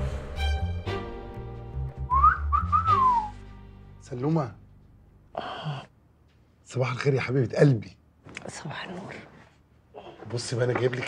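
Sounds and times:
soft background music: 0:00.0 - 0:05.4
person whistling a tune: 0:02.0 - 0:03.4.

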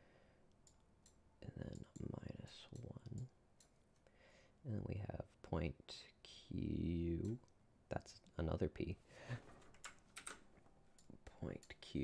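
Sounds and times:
computer keys clicking: 0:09.7 - 0:10.4.

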